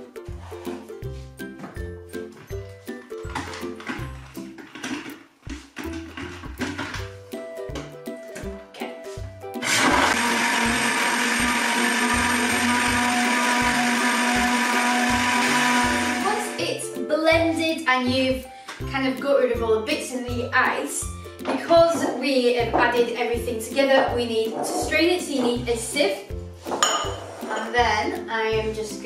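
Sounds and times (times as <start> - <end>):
background music with steady beat: 0.0 - 29.0
countertop blender running: 9.6 - 16.6.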